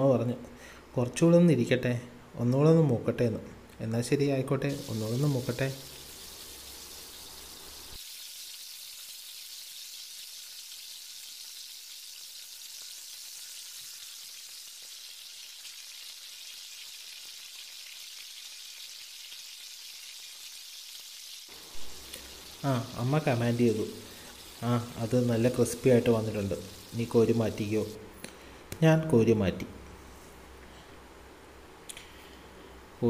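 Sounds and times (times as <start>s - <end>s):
food sizzling in hot oil: 4.7s - 28.0s.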